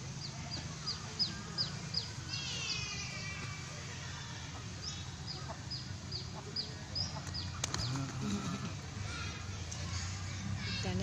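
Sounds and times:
small bird chirping: 0:00.0 - 0:03.6, 0:04.8 - 0:08.8.

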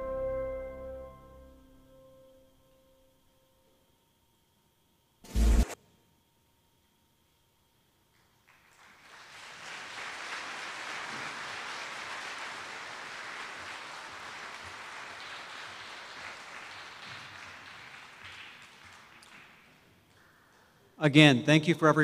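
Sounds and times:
audience applauding: 0:08.4 - 0:20.6.

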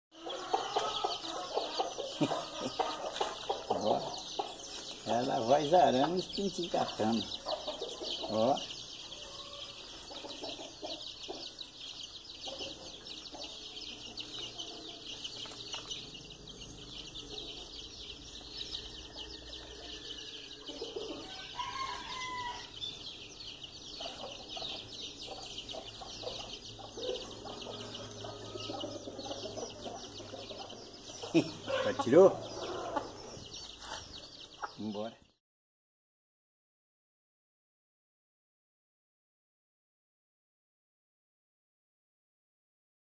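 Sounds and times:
chicks peeping: 0:00.1 - 0:35.4
hen clucking: 0:00.2 - 0:16.4, 0:20.6 - 0:22.8, 0:23.5 - 0:35.2.

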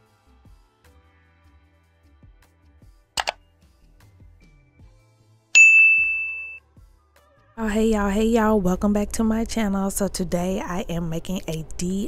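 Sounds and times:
bright electronic ding: 0:05.6 - 0:06.6.

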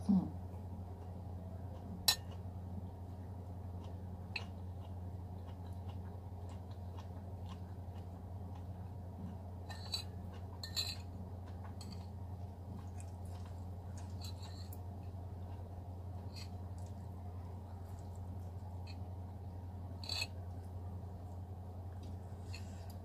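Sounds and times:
steady low hum: 0:00.0 - 0:23.0
soft chewing: 0:00.1 - 0:23.0
cutlery clinking on ceramic bowl: 0:09.7 - 0:11.0.

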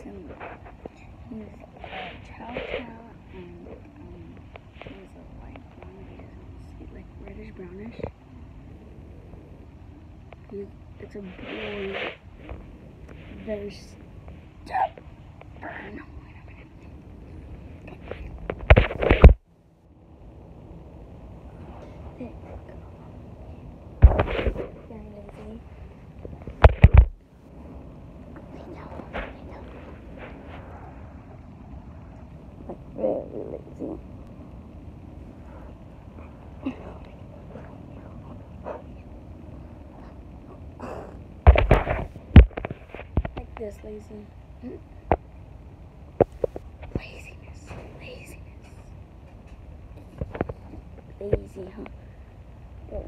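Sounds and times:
faint background hiss: 0:00.0 - 0:53.0
phone rubbing against microphone: 0:00.2 - 0:03.8, 0:11.1 - 0:13.8, 0:17.9 - 0:19.4, 0:24.0 - 0:24.9, 0:26.5 - 0:27.2.

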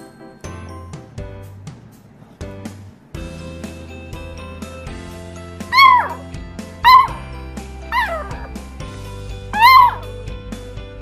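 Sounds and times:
puppy barking: 0:05.7 - 0:08.6, 0:09.6 - 0:10.1.

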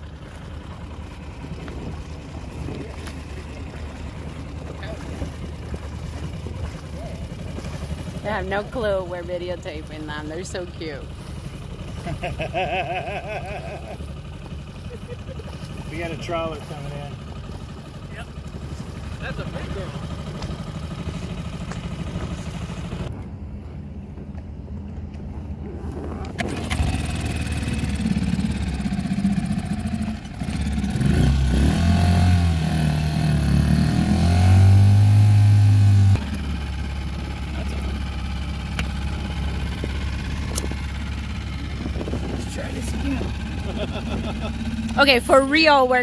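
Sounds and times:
outboard motor humming: 0:00.0 - 0:23.1, 0:25.5 - 0:46.0.

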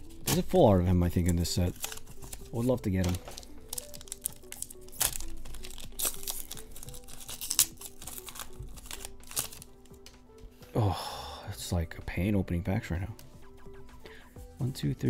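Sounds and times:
foil wrapper crinkling and tearing: 0:00.0 - 0:10.1
quiet background music: 0:00.0 - 0:15.0.

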